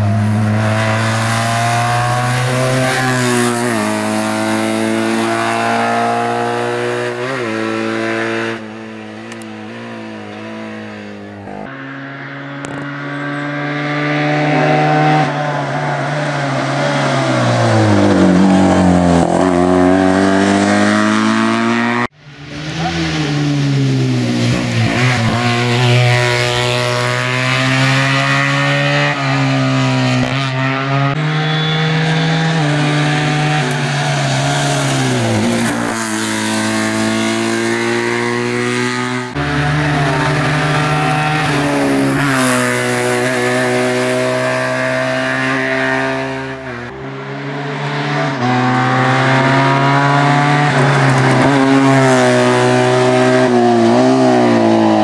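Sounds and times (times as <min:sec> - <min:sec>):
racing car engine revving: 0:00.0 - 0:55.0.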